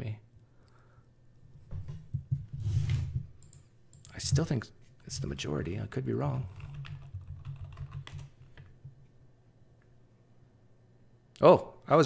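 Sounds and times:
computer mouse clicks: 3.4 - 4.2.

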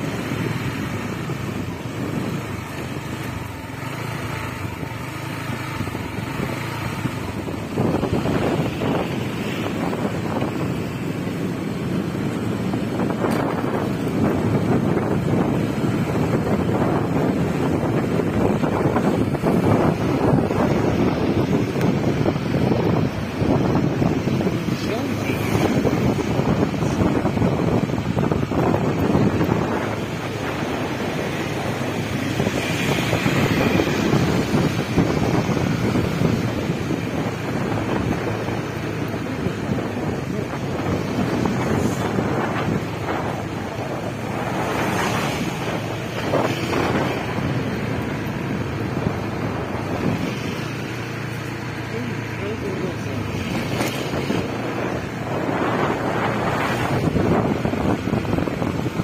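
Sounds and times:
motor scooter running: 0.0 - 59.0
street traffic: 0.0 - 59.0
wind buffeting microphone: 0.0 - 59.0.

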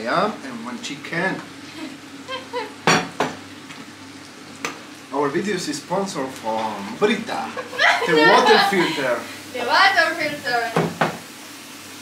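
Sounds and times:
skewers sizzling on grill: 0.0 - 12.0.

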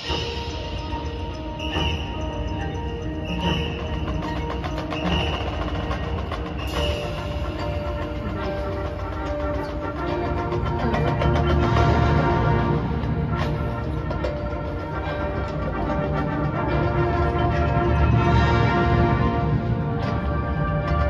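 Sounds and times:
marching band playing chords: 0.0 - 21.0.

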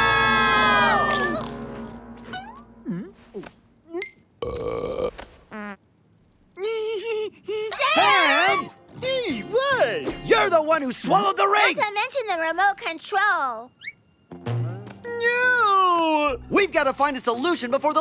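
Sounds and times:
chorus of shocked cries: 0.0 - 1.4
cartoon character burping: 3.9 - 5.2.

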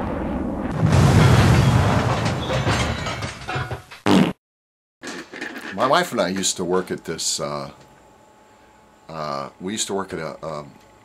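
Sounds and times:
loud explosion: 0.0 - 3.3.

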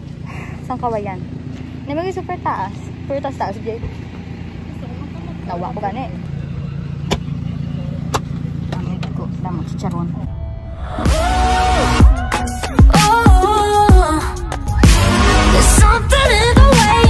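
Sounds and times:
vehicle engine droning: 0.0 - 17.0
voices: 0.6 - 10.3.

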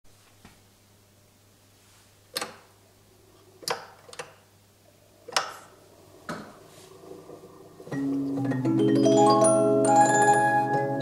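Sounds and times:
music box notes: 7.9 - 11.0.

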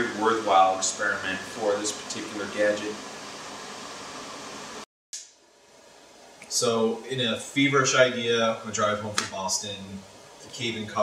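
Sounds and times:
low steady room hiss: 0.0 - 4.8, 5.4 - 11.0.

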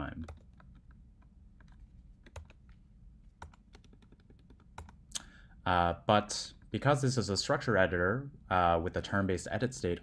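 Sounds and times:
computer keyboard keystrokes: 0.2 - 2.7, 3.4 - 5.0.

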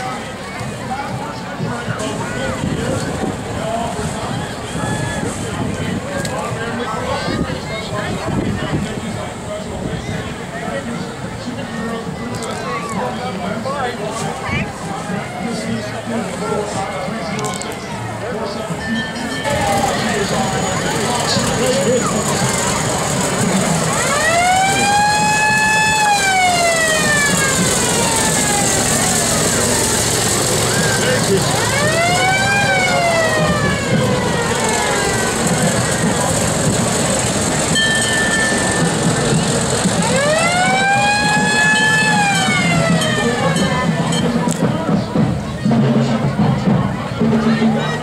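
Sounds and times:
crowd and street noise: 0.0 - 48.0
fire truck siren wailing: 19.4 - 44.1.

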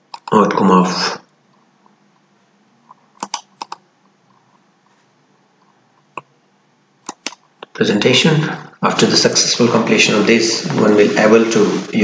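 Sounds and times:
computer mouse clicks: 0.0 - 0.4, 2.9 - 4.4, 7.0 - 7.7.

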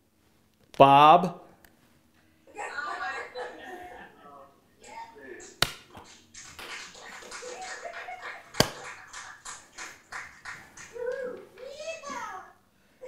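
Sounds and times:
sharp smacks: 5.4 - 6.9.

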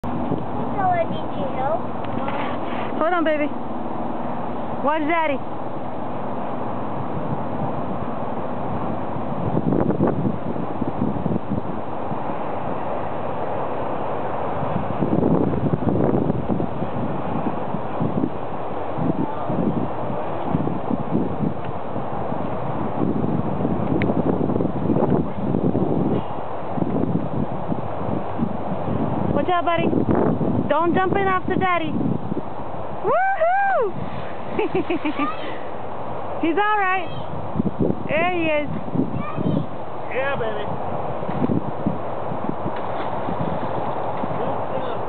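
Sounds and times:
wind buffeting microphone: 0.0 - 45.0.

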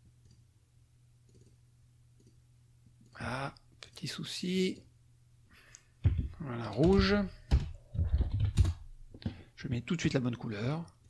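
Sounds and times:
typing on computer keyboard: 1.3 - 1.6
person speaking: 3.1 - 4.9, 6.0 - 7.6.

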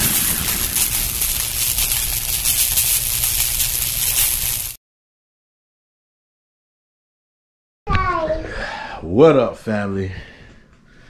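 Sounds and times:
swooshing impact sound effect: 0.0 - 2.8.

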